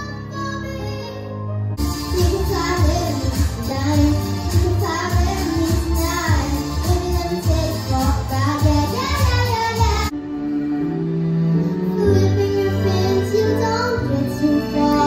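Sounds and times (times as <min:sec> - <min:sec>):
girl singing into a microphone: 0:00.0 - 0:01.3, 0:02.1 - 0:10.1, 0:11.9 - 0:15.0.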